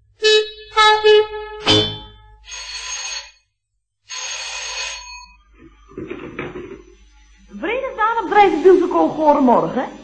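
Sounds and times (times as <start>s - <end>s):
telephone bell ringing: 2.4s - 5.5s.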